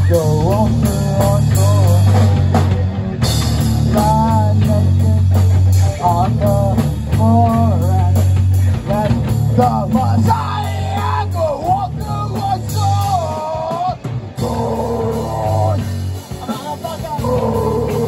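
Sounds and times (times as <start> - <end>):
bass guitar: 0.0 - 18.0
distorted electric guitars: 0.0 - 18.0
drum kit: 0.0 - 18.0
lead vocal singing: 0.0 - 18.0.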